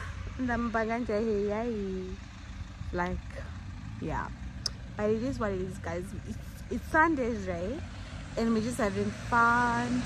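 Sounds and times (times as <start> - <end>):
woman speaking: 0.0 - 2.2, 2.9 - 10.0
vehicle engine idling: 0.0 - 10.0.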